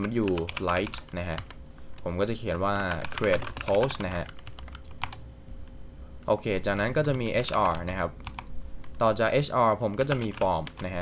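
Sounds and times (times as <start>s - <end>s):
computer keyboard typing: 0.0s - 1.6s, 2.7s - 5.2s, 6.7s - 9.0s, 10.0s - 11.0s.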